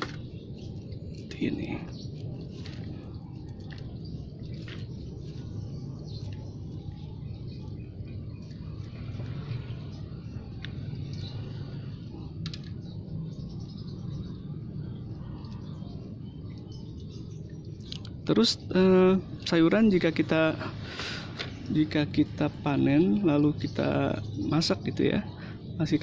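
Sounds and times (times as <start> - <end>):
birds chirping: 0.0 - 26.0
steady low hum: 0.0 - 26.0.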